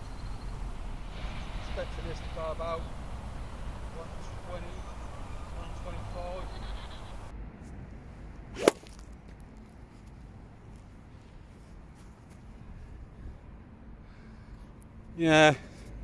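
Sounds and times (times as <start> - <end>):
golf club striking ball: 8.6 - 9.0
golf club swish: 8.6 - 9.0.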